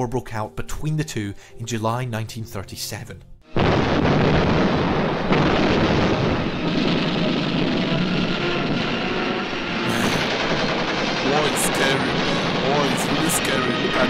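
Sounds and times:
soundtrack music: 0:03.4 - 0:14.0
gunfire: 0:03.6 - 0:08.6, 0:10.2 - 0:14.0
explosions: 0:03.6 - 0:14.0.

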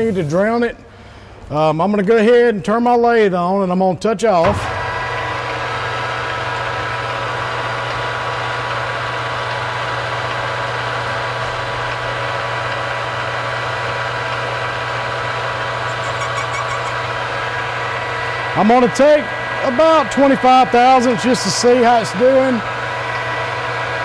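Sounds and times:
lathe motor and gear hum: 0:04.4 - 0:24.0.

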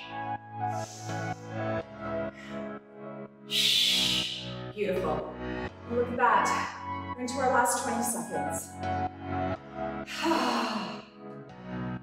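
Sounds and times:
workout music: 0:00.0 - 0:12.0.

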